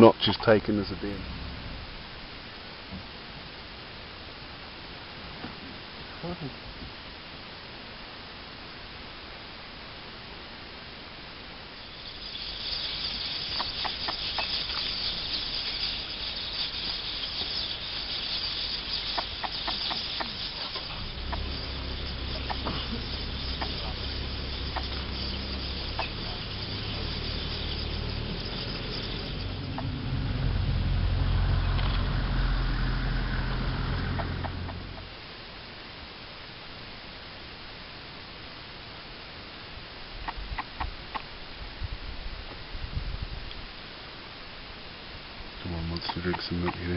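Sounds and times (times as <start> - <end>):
high insect buzz: 8.4 - 35.8
engine running steadily: 11.9 - 35.2
clucking bird calls: 12.0 - 30.0, 34.1 - 35.1, 46.0 - 46.9.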